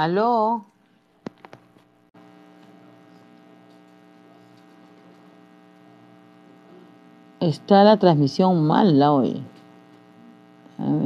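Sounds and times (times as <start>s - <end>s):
electrical hum of held tones: 0.0s - 11.0s.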